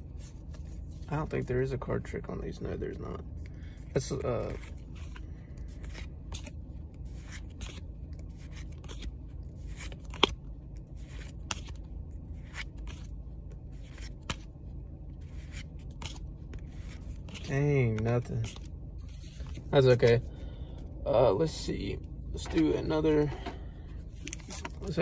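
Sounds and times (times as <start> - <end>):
cards sliding papery swishes: 4.1 - 14.5, 15.2 - 20.2.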